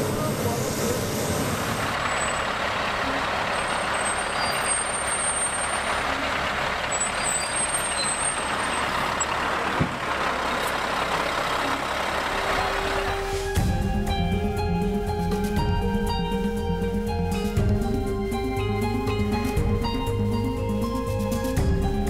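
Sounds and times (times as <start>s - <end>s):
truck diesel engine running: 0.0s - 22.0s.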